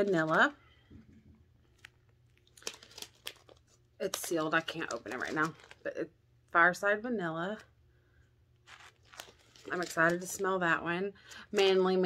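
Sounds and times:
plastic pouch crinkling: 1.6 - 6.0, 8.6 - 10.5.

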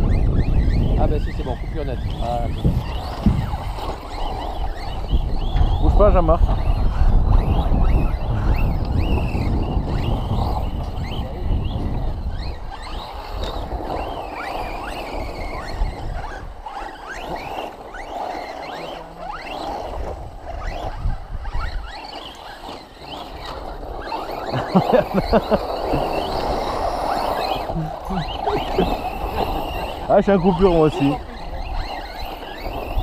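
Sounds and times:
electric rc car motors whining: 0.0 - 33.0.

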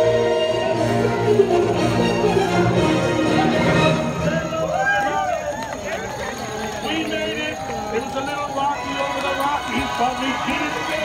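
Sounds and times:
voices singing: 0.0 - 4.5.

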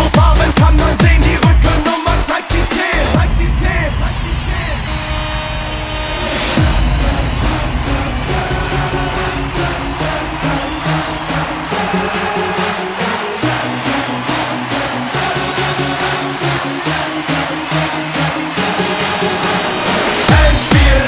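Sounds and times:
electronic dance music: 0.0 - 21.0.

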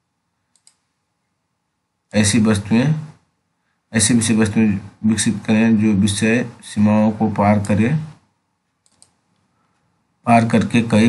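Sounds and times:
computer mouse clicks: 0.5 - 0.9, 8.8 - 9.5.

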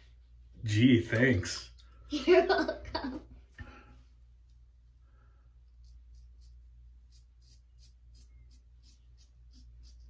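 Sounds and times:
razor scraping beard hairs: 5.6 - 10.0.

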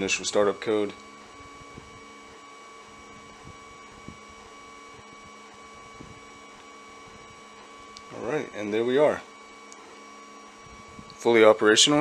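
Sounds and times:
steady hum with high whine: 0.0 - 12.0.

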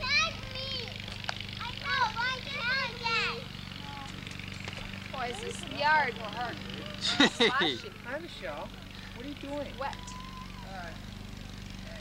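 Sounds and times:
young children calling and babbling: 0.0 - 4.3, 5.0 - 11.2.

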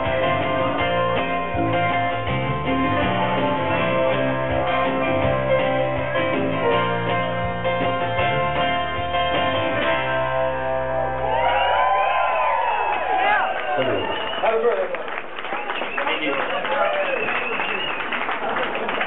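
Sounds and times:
live band playing: 0.0 - 12.0
crowd whooping and cheering: 10.9 - 19.0.

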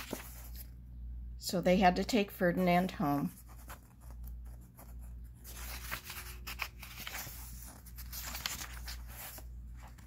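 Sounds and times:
hand rubbing book pages: 0.0 - 0.7, 3.3 - 10.0
low steady hum: 0.0 - 10.0.

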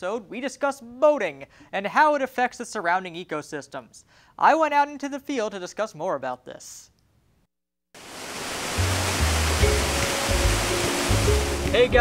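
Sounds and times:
water rushing through lock gates: 8.0 - 11.8.

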